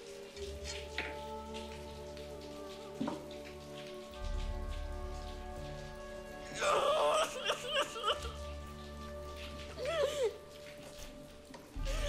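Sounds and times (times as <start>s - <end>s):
rain falling: 0.0s - 12.0s.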